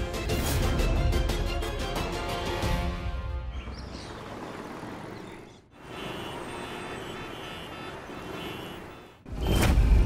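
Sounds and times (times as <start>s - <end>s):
city road traffic: 2.9s - 10.0s
car horn: 5.8s - 9.2s.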